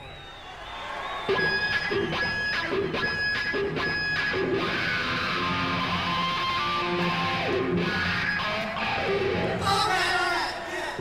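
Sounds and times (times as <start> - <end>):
live rock band playing: 1.3 - 9.8
electric guitar chords: 1.3 - 9.9.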